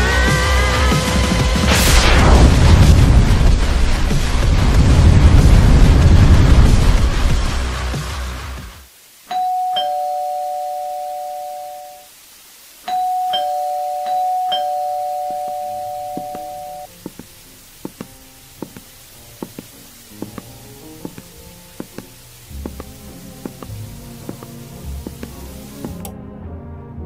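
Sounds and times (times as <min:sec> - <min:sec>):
noisy hiss: 0:00.0 - 0:26.1
two-tone doorbell chime: 0:09.3 - 0:12.1, 0:12.9 - 0:16.9.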